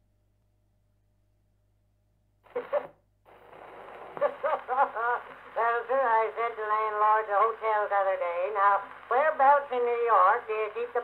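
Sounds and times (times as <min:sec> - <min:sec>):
record surface hiss: 0:02.4 - 0:11.0.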